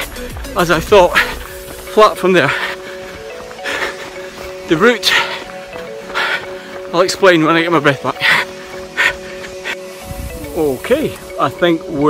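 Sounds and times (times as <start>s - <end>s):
man panting: 0.0s - 6.9s, 8.1s - 9.9s
background music: 0.0s - 12.0s.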